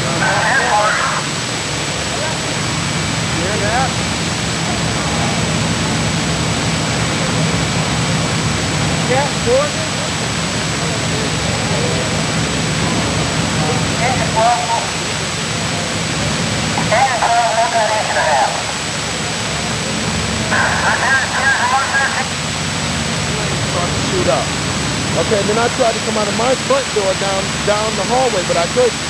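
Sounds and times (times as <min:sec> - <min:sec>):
fire engines rumbling: 0:00.0 - 0:29.0
indistinct voices: 0:00.0 - 0:29.0.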